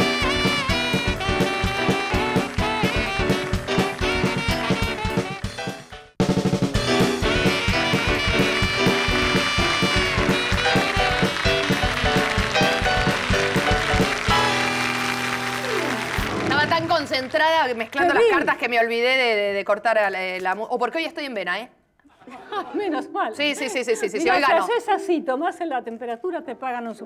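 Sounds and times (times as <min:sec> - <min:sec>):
upbeat music with steady beat: 0:00.0 - 0:15.0
swing jazz band: 0:00.0 - 0:16.7.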